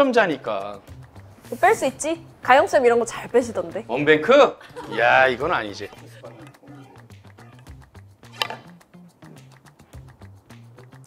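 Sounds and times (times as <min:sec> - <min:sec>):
quiet background music: 0:00.0 - 0:11.0
cue striking billiard ball: 0:08.3 - 0:08.8.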